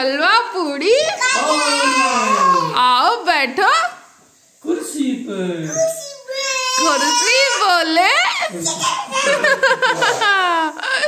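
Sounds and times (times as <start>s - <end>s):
young child wailing: 1.2s - 2.8s, 5.7s - 7.8s, 8.6s - 9.7s.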